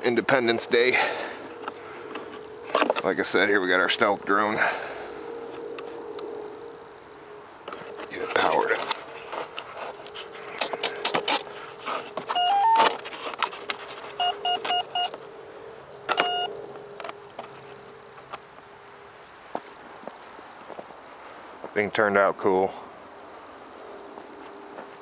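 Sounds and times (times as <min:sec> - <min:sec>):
electronic beeps: 0:12.3 - 0:12.9, 0:14.2 - 0:15.2, 0:16.1 - 0:16.5.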